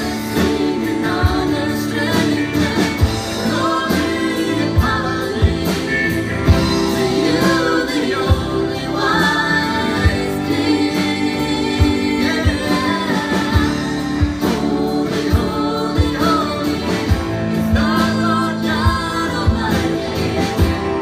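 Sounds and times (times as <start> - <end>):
gospel band with voices singing: 0.0 - 21.0
steady drum beat: 0.0 - 21.0.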